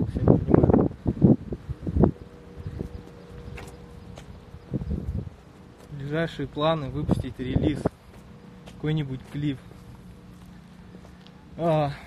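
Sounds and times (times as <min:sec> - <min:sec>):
wind buffeting microphone: 0:00.0 - 0:08.4
faint steady hum: 0:00.0 - 0:12.0.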